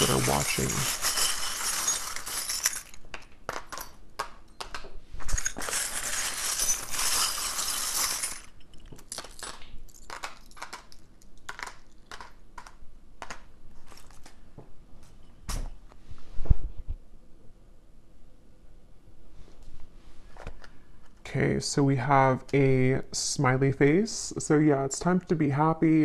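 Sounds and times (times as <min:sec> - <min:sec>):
charms jangling in a container: 0:00.0 - 0:03.0, 0:05.2 - 0:12.2.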